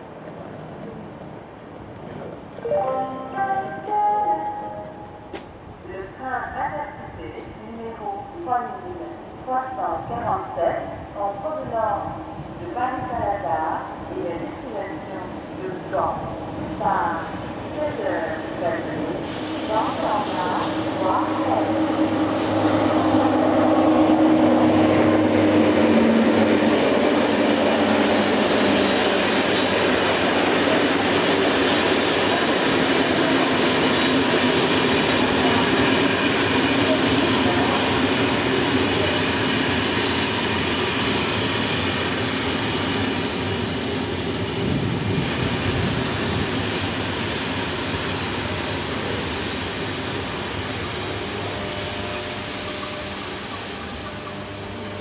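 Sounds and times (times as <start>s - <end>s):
train wheels rumbling on rail: 0.0s - 8.3s, 9.2s - 55.0s
electric locomotive whine: 2.1s - 5.8s, 15.0s - 55.0s
train brakes squealing: 49.7s - 55.0s.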